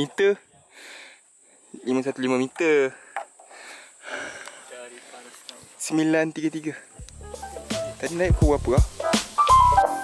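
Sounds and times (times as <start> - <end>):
quiet breathing: 0.5 - 1.8, 2.8 - 5.8.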